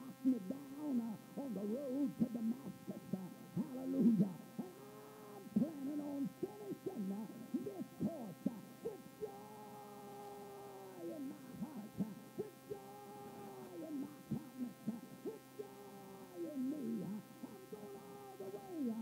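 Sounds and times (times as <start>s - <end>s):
steady recording hum: 0.0s - 19.0s.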